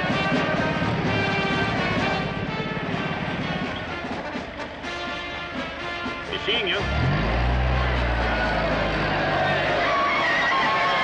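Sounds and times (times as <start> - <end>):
crowd voices: 6.3 - 11.0
steady low drone: 6.8 - 10.2.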